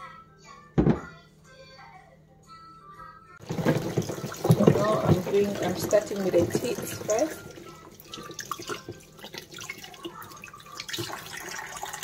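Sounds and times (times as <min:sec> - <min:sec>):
plastic thump on steel: 0:00.8 - 0:01.1
tap water running into bowl: 0:03.4 - 0:12.0.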